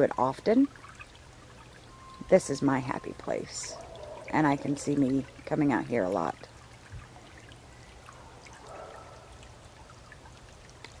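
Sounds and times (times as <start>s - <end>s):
stream trickling: 0.0s - 11.0s
light ticks: 10.8s - 11.0s.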